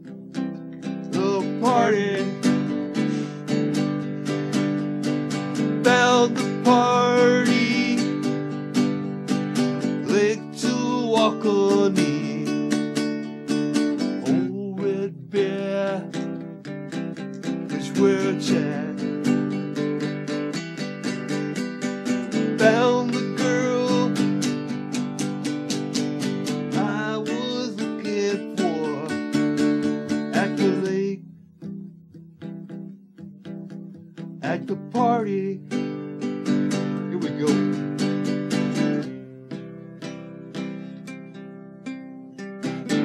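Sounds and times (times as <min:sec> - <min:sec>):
acoustic guitar strumming: 0:00.0 - 0:43.0
man singing: 0:01.0 - 0:04.6, 0:05.5 - 0:08.5, 0:09.8 - 0:13.0, 0:14.1 - 0:20.1, 0:21.0 - 0:24.8, 0:26.2 - 0:31.3, 0:34.4 - 0:36.0, 0:36.7 - 0:38.1.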